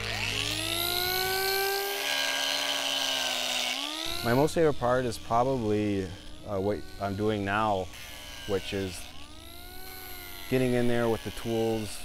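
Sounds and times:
angle grinder grinding wood: 0.0s - 12.0s.

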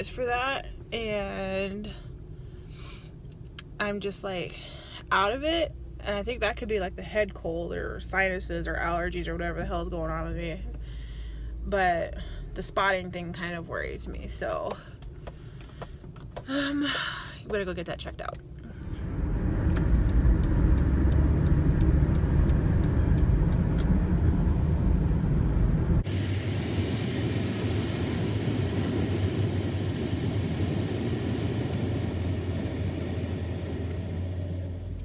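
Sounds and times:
car cabin road rumble: 3.2s - 35.0s.

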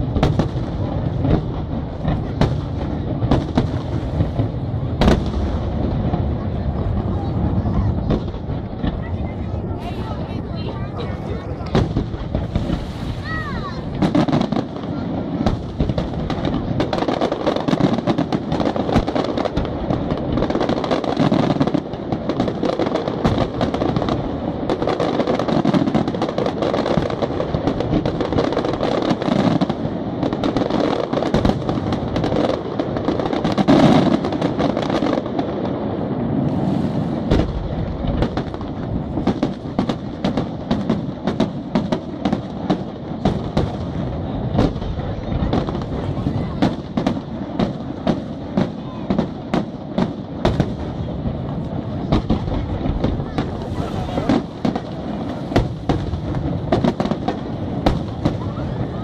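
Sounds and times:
fireworks cracking: 0.0s - 59.0s
fireworks rumble: 0.0s - 59.0s.

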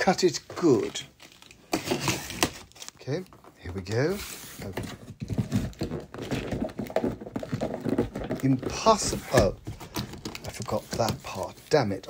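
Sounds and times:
cardboard knocks and scrapes: 3.7s - 12.0s.

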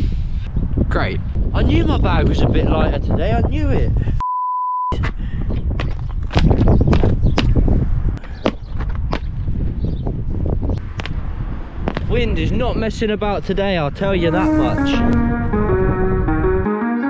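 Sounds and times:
wind buffeting microphone: 0.0s - 4.2s, 5.0s - 16.5s
electronic censor bleep: 4.2s - 5.0s.

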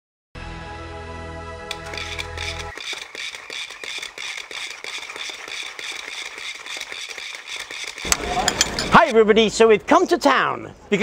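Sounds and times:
generator clicking rattle: 1.7s - 9.2s.

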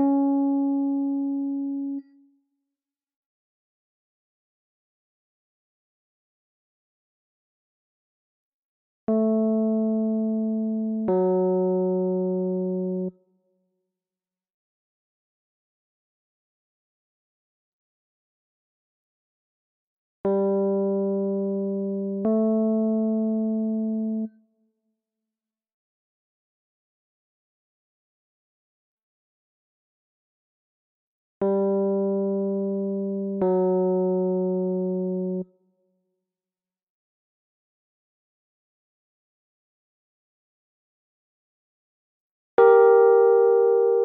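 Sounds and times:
electronic instrument notes: 42.6s - 44.0s.

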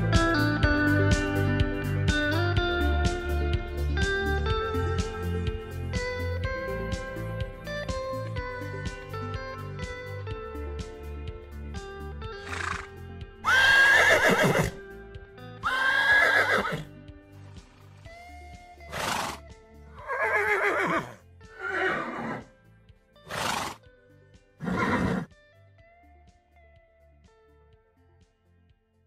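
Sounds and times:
soft background music: 0.0s - 29.0s
horse whinnying: 12.4s - 14.8s, 15.6s - 16.9s, 18.9s - 22.5s, 23.3s - 23.8s, 24.6s - 25.3s.

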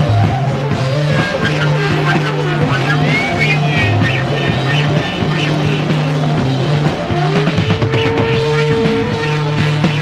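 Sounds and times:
heavy psychedelic rock music: 0.0s - 10.0s
pulsing bass line: 0.0s - 10.0s.

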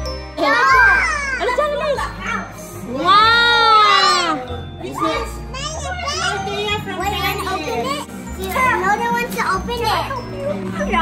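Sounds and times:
children chattering: 5.2s - 11.0s.

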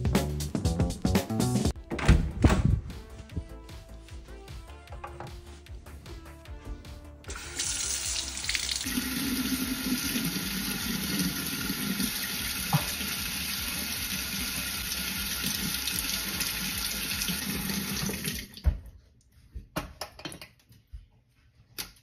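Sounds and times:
faucet water running into sink: 7.3s - 18.6s.

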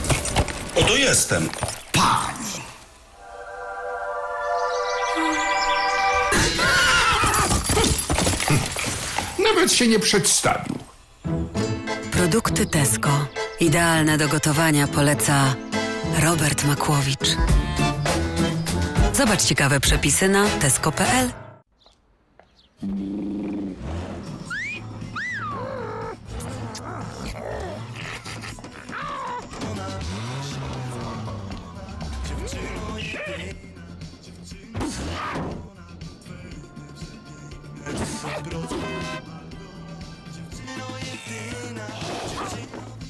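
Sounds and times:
music: 3.2s - 7.4s, 11.0s - 21.6s, 24.5s - 43.0s
horse whinnying: 6.4s - 8.7s, 23.5s - 29.6s.

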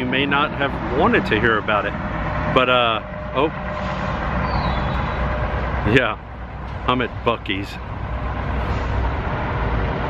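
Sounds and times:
traffic: 0.0s - 10.0s
vehicle engines idling: 0.0s - 10.0s.

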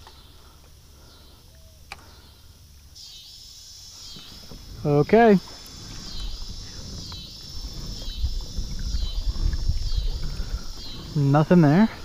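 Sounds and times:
insects buzzing: 0.0s - 12.0s
low microphone rumble: 4.2s - 12.0s.

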